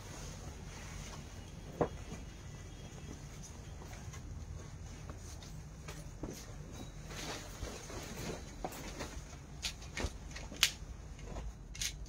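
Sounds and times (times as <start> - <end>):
fabric rustling: 0.0 - 11.6.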